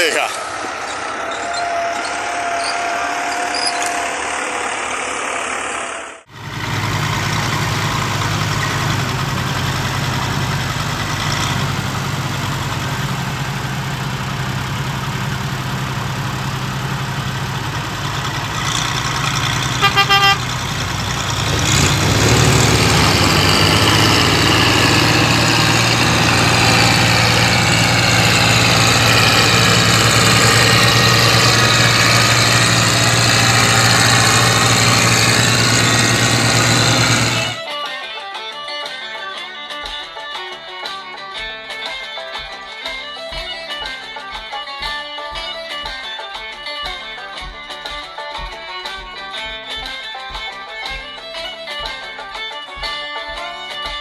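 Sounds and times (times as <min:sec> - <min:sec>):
heavy machine engine running: 0:00.4 - 0:37.6
horn beeps: 0:19.7 - 0:20.6.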